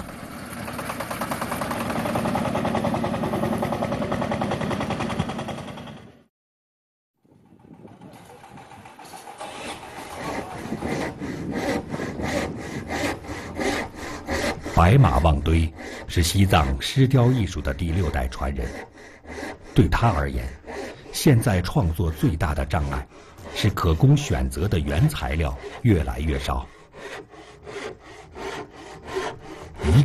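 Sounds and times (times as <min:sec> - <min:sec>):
tractor engine running: 0:00.0 - 0:06.2, 0:07.4 - 0:10.2
hand sawing wood: 0:08.0 - 0:30.0.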